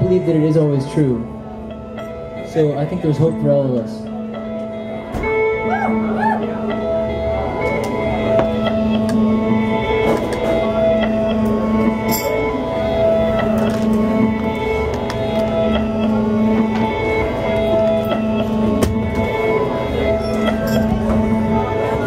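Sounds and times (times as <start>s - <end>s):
electric guitar playing: 0.0s - 22.0s.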